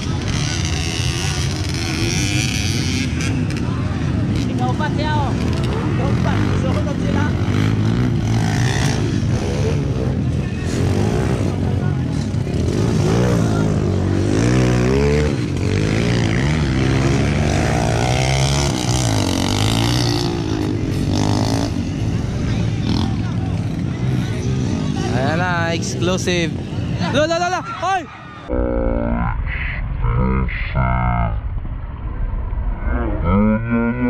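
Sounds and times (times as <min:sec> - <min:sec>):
voices: 0:00.0 - 0:31.4
dirt bike engines revving: 0:00.0 - 0:34.0.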